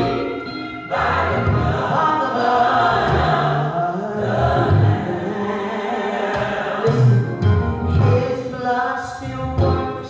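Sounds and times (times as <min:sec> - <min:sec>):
gospel choir singing: 0:00.0 - 0:10.0
low musical accompaniment: 0:06.8 - 0:10.0.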